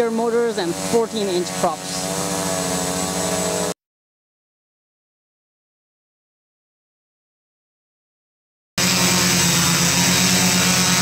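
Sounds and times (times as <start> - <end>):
quadcopter hovering drone: 0.0 - 3.8, 8.8 - 11.0.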